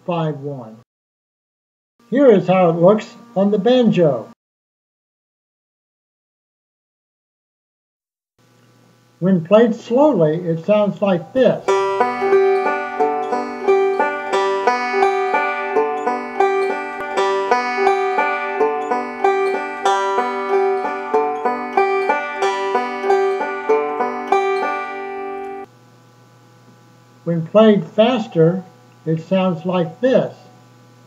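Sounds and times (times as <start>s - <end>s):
banjo picking: 11.6s - 25.7s.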